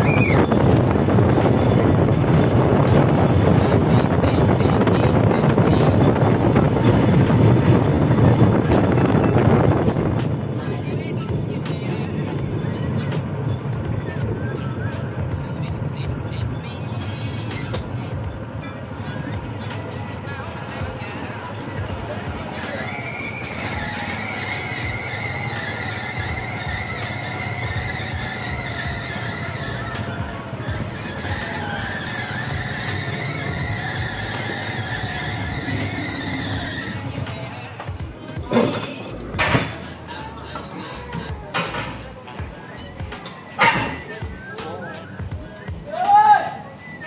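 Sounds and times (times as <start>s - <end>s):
high wavering squeal: 0.0s - 1.8s, 21.1s - 37.8s
small engine rumbling: 0.0s - 45.8s
wheels rolling on rails: 0.0s - 45.8s
wheels clacking over track: 19.0s - 40.6s
small engine running: 22.0s - 37.4s.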